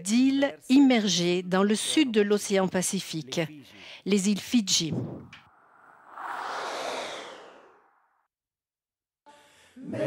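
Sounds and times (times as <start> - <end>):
whoosh transition effect: 5.3 - 8.3.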